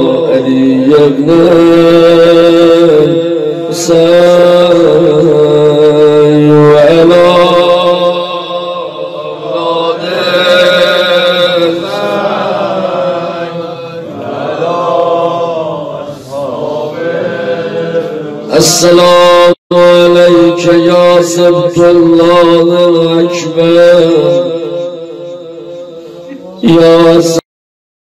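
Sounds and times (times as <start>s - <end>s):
man chanting into a microphone: 0.0s - 27.4s.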